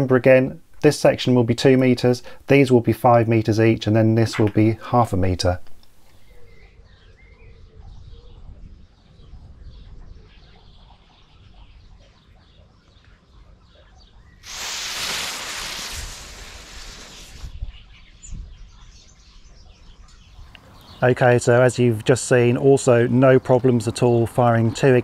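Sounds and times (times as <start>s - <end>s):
fireworks igniter hissing: 14.4s - 17.6s.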